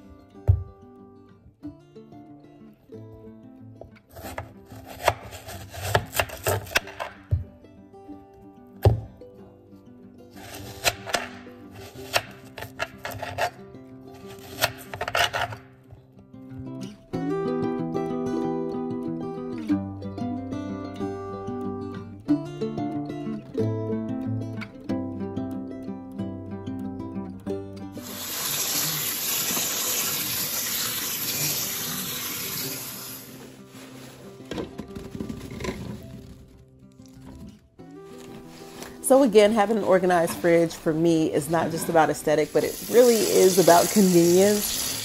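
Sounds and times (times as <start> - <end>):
background music: 0.0 - 45.0
knife cutting watermelon: 4.1 - 7.2, 10.4 - 13.6, 14.2 - 15.6
tap water running over grapes: 28.0 - 34.1, 42.4 - 45.0.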